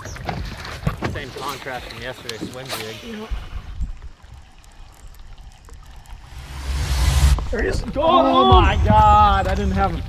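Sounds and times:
quiet water around boat: 0:00.0 - 0:10.0.

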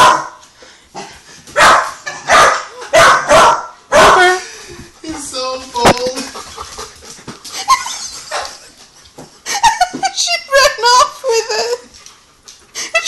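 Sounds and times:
dogs barking: 0:00.0 - 0:00.4, 0:01.5 - 0:04.4
woman laughing: 0:07.5 - 0:08.8, 0:09.4 - 0:11.9, 0:12.8 - 0:13.0.

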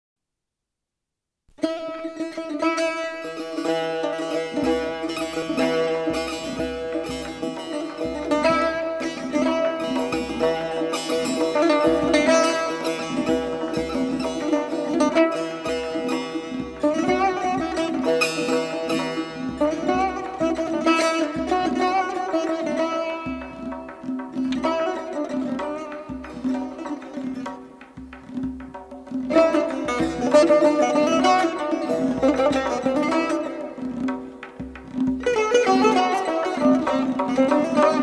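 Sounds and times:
plucked lute melody: 0:01.6 - 0:38.0.

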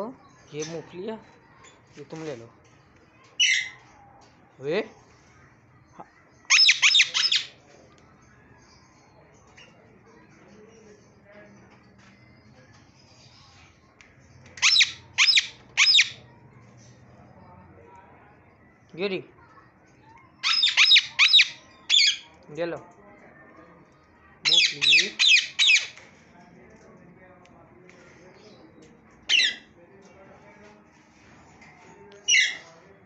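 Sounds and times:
parakeet squawks: 0:03.4 - 0:03.8, 0:06.5 - 0:07.6, 0:14.6 - 0:16.2, 0:20.4 - 0:22.3, 0:24.4 - 0:26.0, 0:29.3 - 0:29.7, 0:32.3 - 0:32.6.

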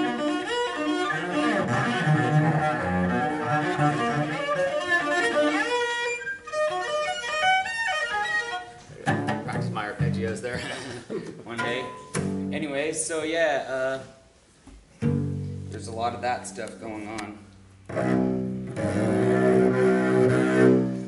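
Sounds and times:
bowed cello: 0:00.0 - 0:10.7, 0:17.8 - 0:21.0.

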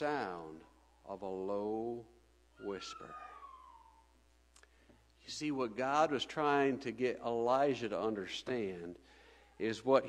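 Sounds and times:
low steady hum: 0:00.0 - 0:10.0
whistle-like tone sliding down: 0:02.6 - 0:04.0.

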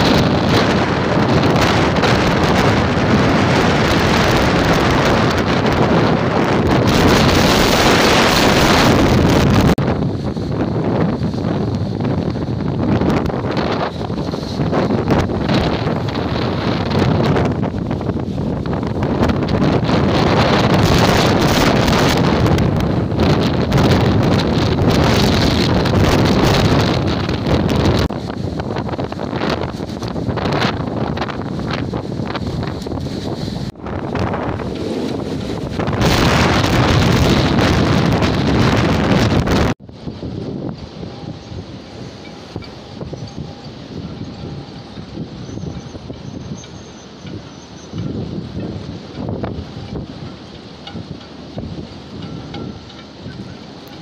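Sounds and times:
rough sea: 0:00.0 - 0:54.0
strong wind buffeting microphone: 0:00.0 - 0:54.0.

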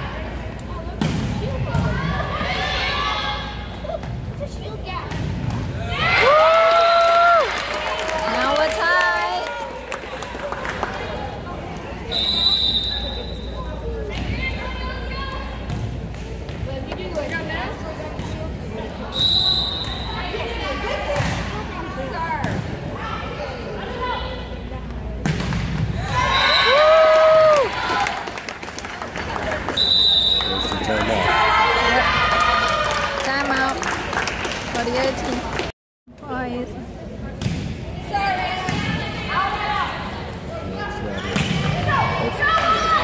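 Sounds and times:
referee whistle blasts: 0:12.1 - 0:13.6, 0:19.1 - 0:20.2, 0:29.8 - 0:30.9.

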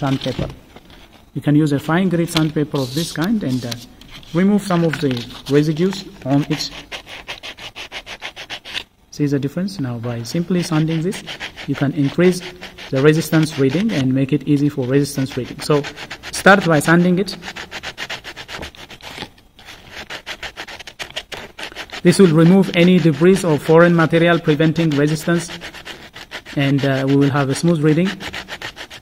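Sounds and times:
sandpaper rubbing on metal: 0:00.0 - 0:01.2, 0:02.0 - 0:08.9, 0:10.3 - 0:29.0.

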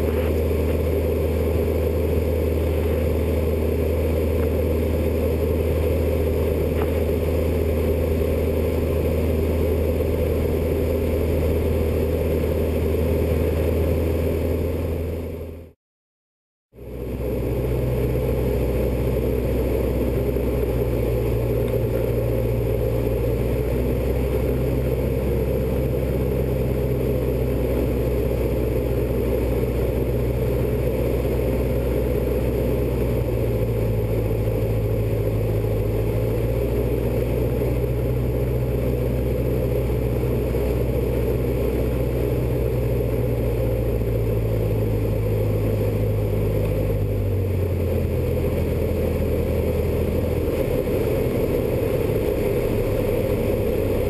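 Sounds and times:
light aircraft engine drone in cockpit: 0:00.0 - 0:15.8, 0:16.8 - 0:54.0.

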